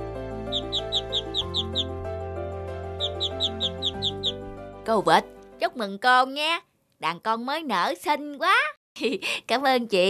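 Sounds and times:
gentle background music: 0:00.0 - 0:06.6
ducklings peeping: 0:00.4 - 0:02.0, 0:03.0 - 0:04.4.

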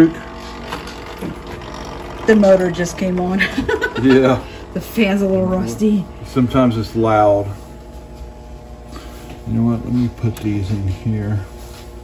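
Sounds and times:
fan motor whirring: 0:00.0 - 0:12.0.

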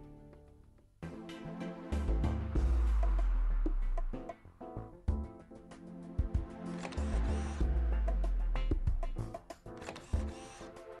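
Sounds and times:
theme music layered tones: 0:01.0 - 0:04.1.

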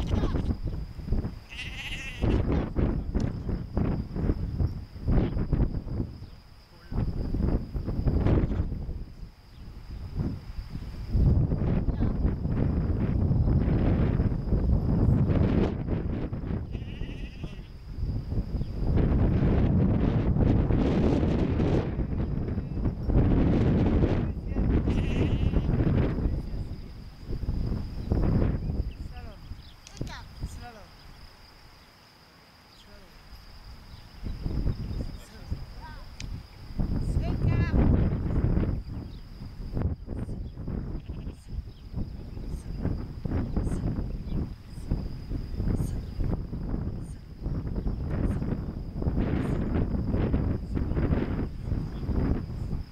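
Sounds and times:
sheep bleating: 0:01.5 - 0:02.4, 0:16.7 - 0:17.7, 0:24.8 - 0:25.7.

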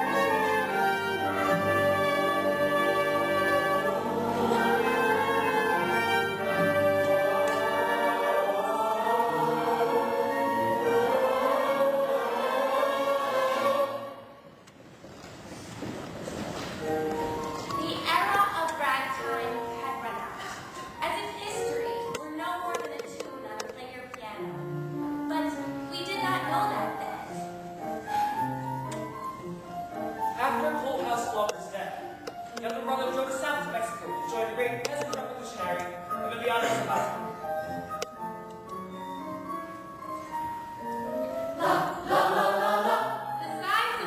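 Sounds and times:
brass: 0:00.0 - 0:14.2
orchestra playing held chords: 0:00.0 - 0:14.4.

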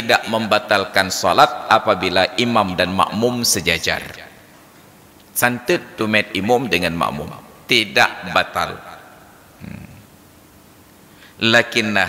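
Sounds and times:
man's low murmur: 0:09.6 - 0:10.1.

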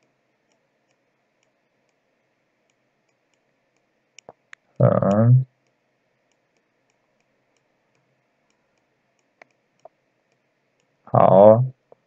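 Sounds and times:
drawn-out vocal syllable: 0:04.8 - 0:05.4, 0:11.1 - 0:11.7.

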